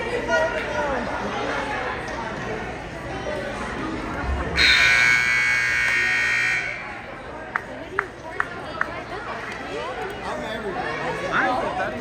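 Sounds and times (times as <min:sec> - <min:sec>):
background chatter: 0:00.0 - 0:12.0
scoreboard buzzer: 0:04.6 - 0:07.0.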